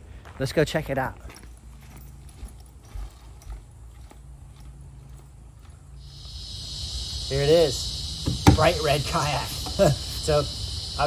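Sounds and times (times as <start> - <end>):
footsteps on wooden boardwalk: 0.0 - 6.1.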